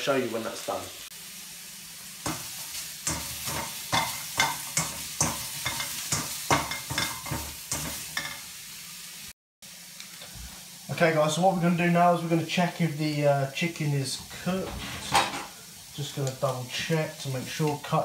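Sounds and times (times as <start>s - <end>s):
chicken sizzling in a wok: 0.0s - 18.0s
spatula scraping and tapping pan: 2.2s - 8.4s.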